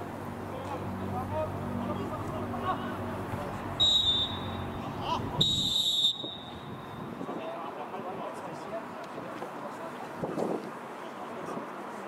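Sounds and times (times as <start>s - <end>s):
referee's whistle blasts: 3.8s - 4.8s, 5.4s - 6.9s.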